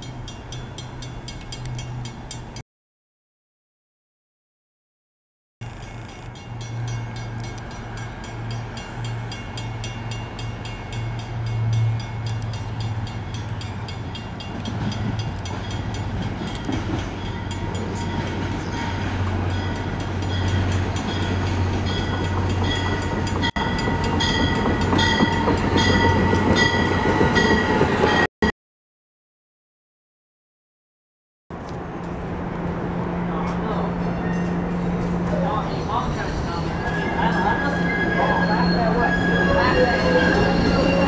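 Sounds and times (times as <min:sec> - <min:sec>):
grade-crossing bell dinging: 0:00.0 - 0:02.6, 0:05.6 - 0:28.3, 0:33.3 - 0:41.0
train engine hum: 0:00.0 - 0:02.6, 0:05.6 - 0:28.3, 0:31.5 - 0:41.0.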